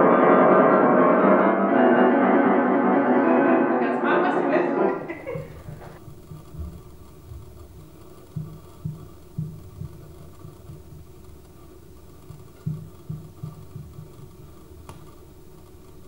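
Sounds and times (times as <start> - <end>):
faint steady hum: 1.8 - 16.0.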